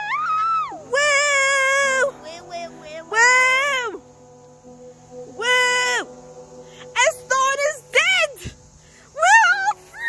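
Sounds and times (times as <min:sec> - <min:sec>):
child yelling: 0:00.0 - 0:04.0
faint background music: 0:00.0 - 0:10.0.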